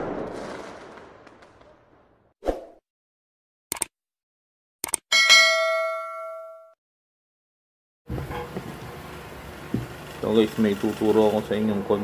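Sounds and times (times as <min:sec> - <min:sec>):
bright bell ding: 0:05.1 - 0:06.8.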